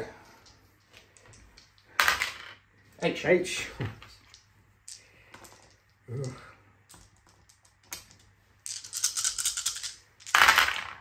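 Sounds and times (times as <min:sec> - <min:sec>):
dice clattering in wooden tray: 0:01.2 - 0:02.6, 0:04.0 - 0:11.0
dice rattling in hand: 0:04.1 - 0:11.0.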